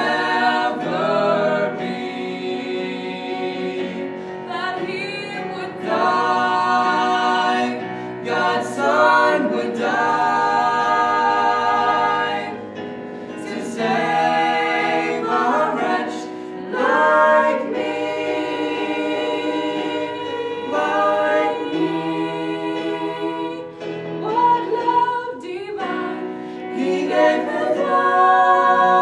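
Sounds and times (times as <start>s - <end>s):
vocal trio singing gospel harmony: 0.0s - 29.0s.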